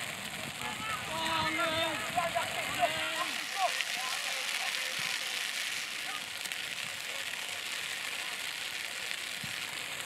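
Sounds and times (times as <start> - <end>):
rain falling: 0.0 - 10.0.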